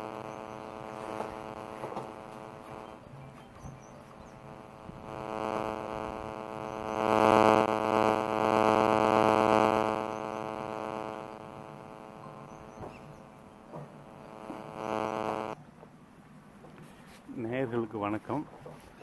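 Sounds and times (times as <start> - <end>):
steady buzzing drone: 0.0 - 15.6.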